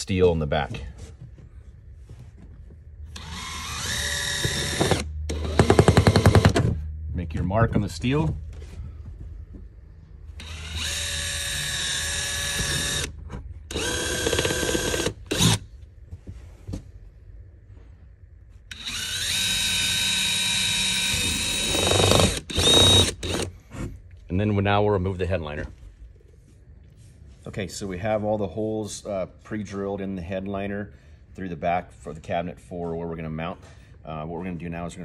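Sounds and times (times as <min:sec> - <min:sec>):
cordless drill whining: 0:03.1 - 0:06.7, 0:10.4 - 0:15.6, 0:18.7 - 0:23.6.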